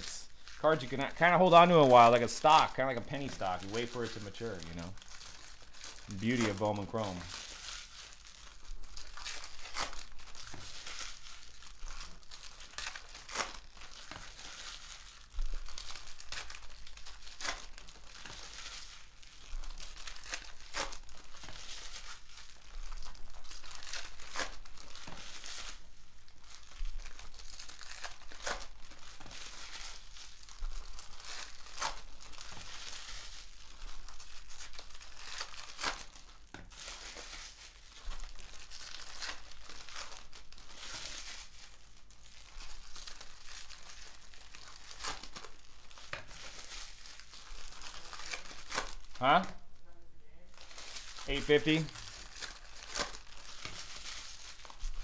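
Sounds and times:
foil wrapper tearing: 0.0s - 49.5s, 50.5s - 55.0s
foil crinkling: 0.0s - 49.6s, 50.5s - 55.0s.

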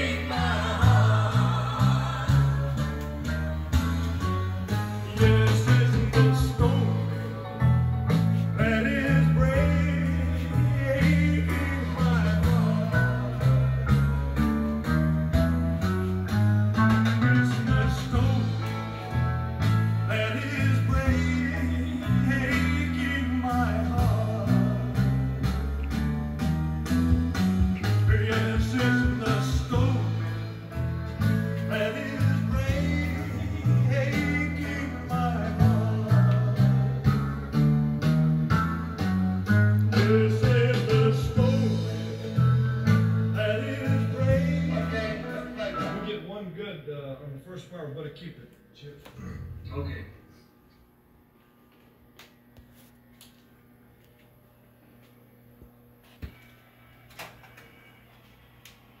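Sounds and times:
song through jukebox speaker: 0.0s - 46.3s
low electrical hum: 0.0s - 59.0s.

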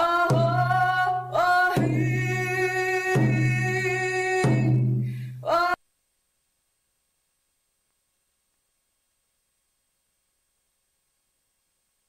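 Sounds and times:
woman singing: 0.0s - 5.8s
slow booming drum strokes: 1.7s - 5.3s.

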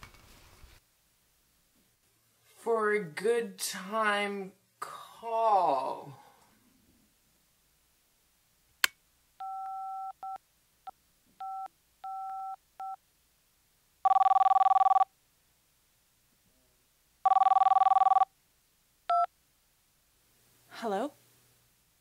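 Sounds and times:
phone ringing tone: 9.4s - 10.4s, 11.4s - 13.0s, 14.0s - 15.1s, 17.2s - 18.3s.

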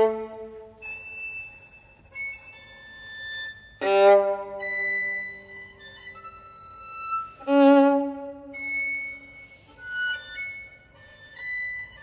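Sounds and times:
solo violin playing: 0.0s - 1.1s, 2.1s - 12.0s.

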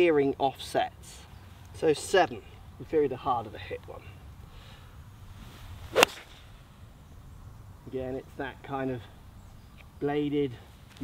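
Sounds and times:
golf club swing swish: 5.3s - 6.8s
golf ball impact crack: 5.6s - 7.1s.

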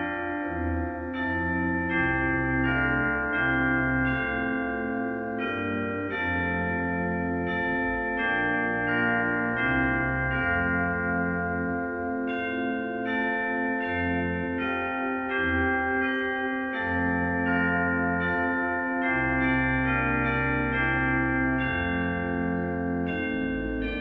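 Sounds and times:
church chimes playing a tune: 0.0s - 24.0s.

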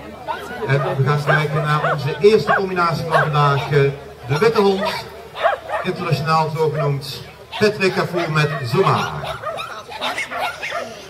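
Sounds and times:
dog barking: 0.7s - 3.8s, 4.8s - 6.0s, 6.7s - 11.0s.

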